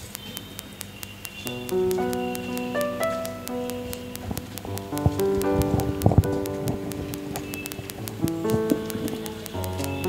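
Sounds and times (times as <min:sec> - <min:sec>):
fast even ticking: 0:00.0 - 0:10.0
slow electronic keyboard music: 0:00.5 - 0:10.0.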